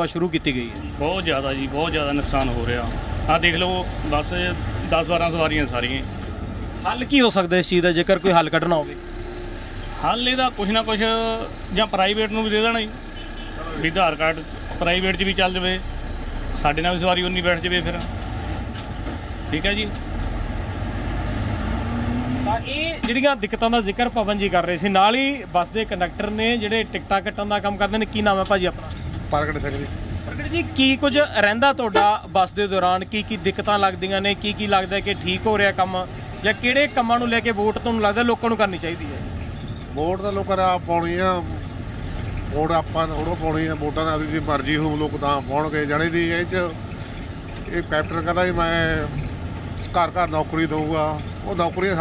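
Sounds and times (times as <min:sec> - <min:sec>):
men talking: 0:00.0 - 0:18.2, 0:19.4 - 0:20.1, 0:22.4 - 0:41.8, 0:42.4 - 0:52.0
bus engine rumble: 0:00.0 - 0:52.0
man speaking: 0:06.8 - 0:09.1.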